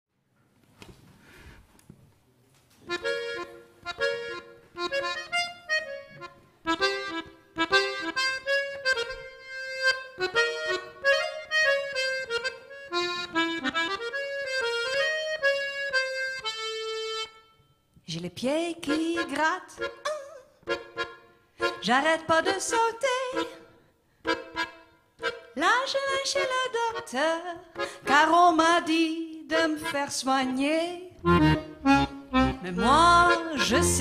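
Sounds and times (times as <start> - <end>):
piano accordion playing: 2.9 - 17.6, 18.8 - 34.0.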